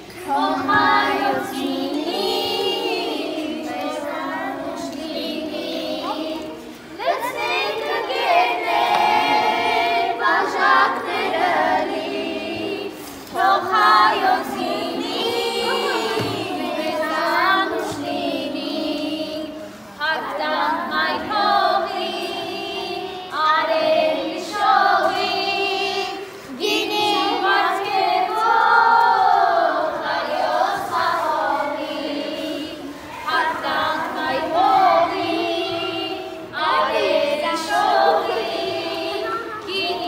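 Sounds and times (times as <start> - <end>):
group singing unaccompanied: 0.0 - 40.0.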